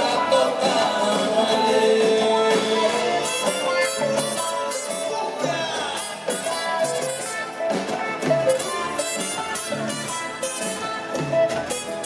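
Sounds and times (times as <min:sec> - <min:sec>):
drums with cymbals: 0:00.0 - 0:12.0
electric guitars: 0:00.0 - 0:12.0
live rock band playing: 0:00.0 - 0:12.0.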